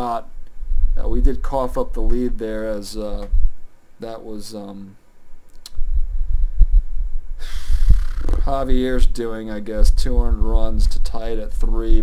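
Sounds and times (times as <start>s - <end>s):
breathy hiss: 7.4s - 8.4s.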